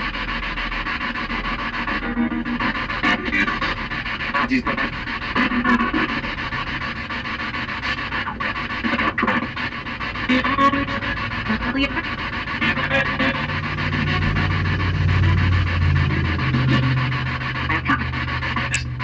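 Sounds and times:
fluttering static hiss: 0.0 - 19.0
low steady hum: 10.7 - 19.0.

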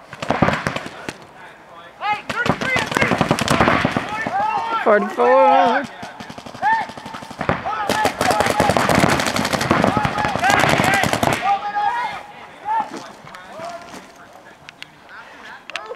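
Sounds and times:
paintball markers firing rapidly: 0.1 - 1.2, 2.3 - 4.7, 5.8 - 11.5.

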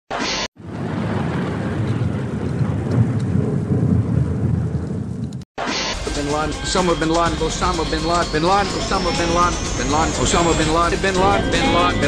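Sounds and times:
low rumbling thunder: 0.6 - 5.4.

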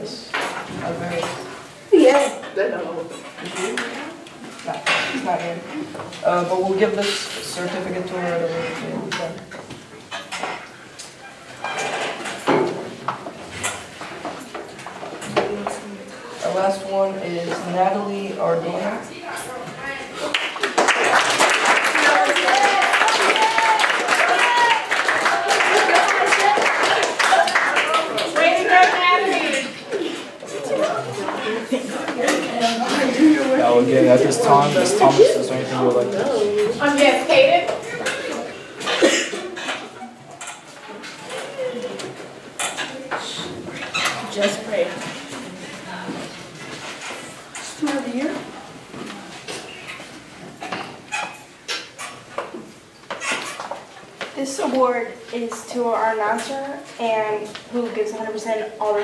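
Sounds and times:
faint voices: 21.9 - 50.0
person coughing: 38.8 - 39.5.

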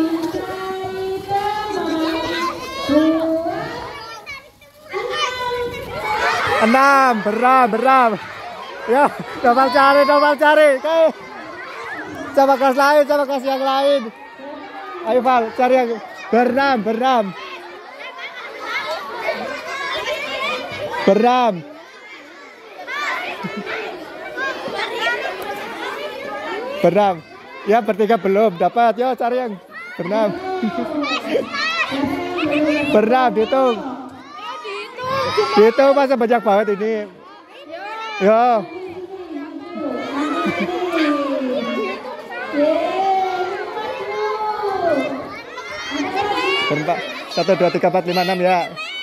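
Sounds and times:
children chattering and calling: 0.0 - 49.0.

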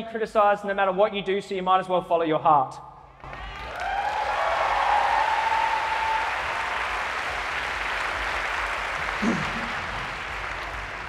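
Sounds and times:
crowd applause: 3.2 - 11.0
crowd cheer: 3.2 - 11.0.

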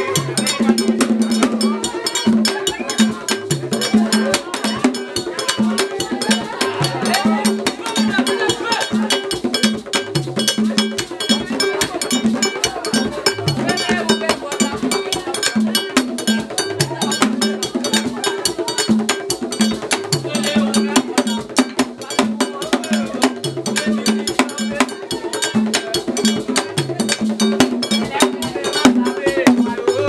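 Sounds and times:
fast clicking percussion beat: 0.0 - 30.0.

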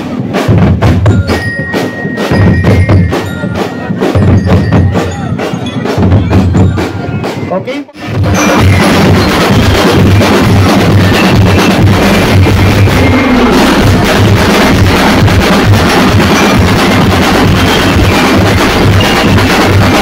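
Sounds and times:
bass drums steady beat: 0.0 - 20.0
drum band playing: 0.0 - 20.0.

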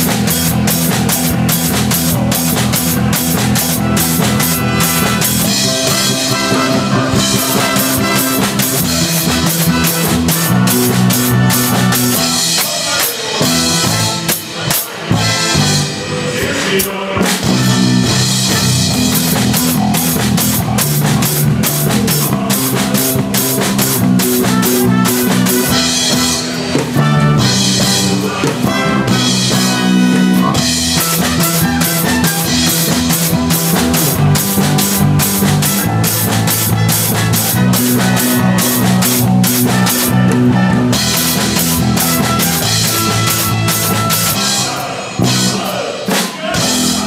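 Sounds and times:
drum kit: 0.0 - 47.0
electric bass: 0.0 - 47.0
electric guitar: 0.0 - 47.0
live band hits with cymbal crash: 0.0 - 47.0.

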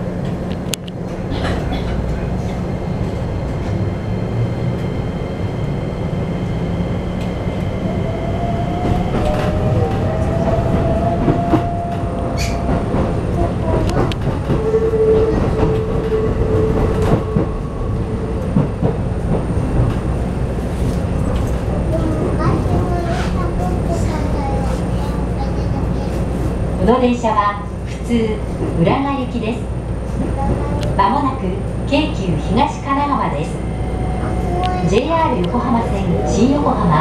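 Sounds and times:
wheels rumbling on track: 0.0 - 37.0
rail clicks: 0.1 - 3.9, 7.0 - 37.0.

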